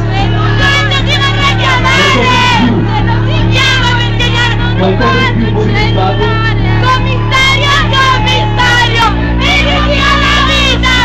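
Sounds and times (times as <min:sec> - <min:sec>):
concert crowd shouting and singing: 0:00.0 - 0:11.0
loud backing beat: 0:00.0 - 0:11.0.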